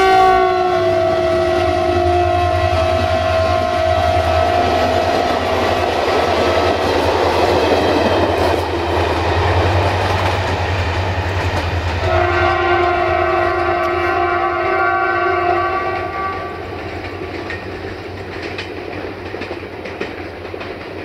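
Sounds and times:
train horn: 0.0s - 6.8s, 11.9s - 17.5s
train passing on rails: 0.0s - 21.0s.

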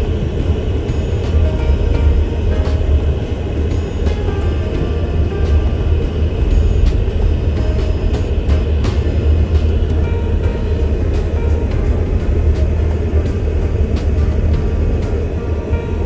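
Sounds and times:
background music: 0.0s - 16.0s
car road and engine rumble: 0.0s - 16.0s.

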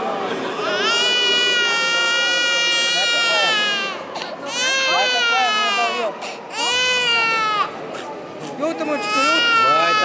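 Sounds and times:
infant crying: 0.5s - 7.8s, 8.7s - 10.0s.

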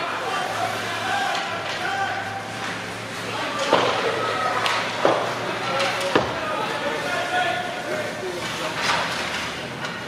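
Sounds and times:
hockey sticks knocking puck: 0.0s - 2.8s, 3.5s - 6.7s.

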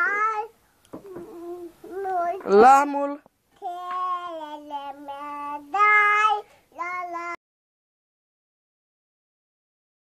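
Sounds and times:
girl singing: 0.0s - 2.5s, 3.6s - 7.4s.

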